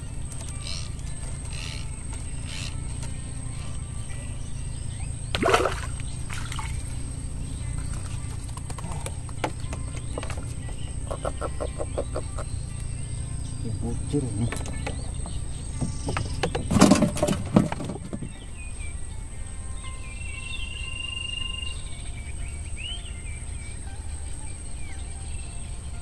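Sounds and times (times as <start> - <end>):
steady low hum: 0.0 - 16.7
quiet background music: 0.0 - 26.0
water splashing: 5.3 - 7.1.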